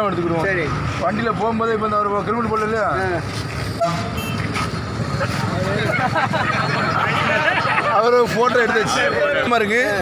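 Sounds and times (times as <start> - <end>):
bus engine passing: 0.0 - 10.0
motorcycles running: 0.0 - 10.0
short vehicle horn toot: 3.8 - 4.5.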